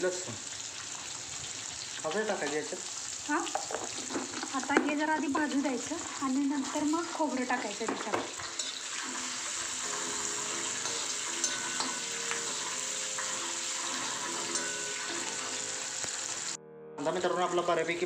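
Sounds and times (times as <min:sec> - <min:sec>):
onions sizzling in hot oil: 0:00.0 - 0:16.6
metal spatula scraping: 0:08.4 - 0:16.4.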